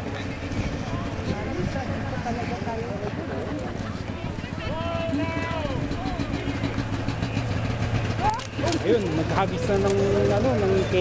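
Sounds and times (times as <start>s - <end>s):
people's voices: 0.0s - 11.0s
truck engine rumbling: 0.0s - 11.0s.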